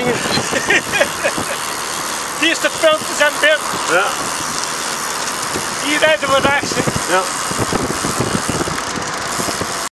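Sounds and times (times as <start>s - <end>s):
wind and road noise: 0.0s - 9.9s
wind buffeting microphone: 0.0s - 9.9s.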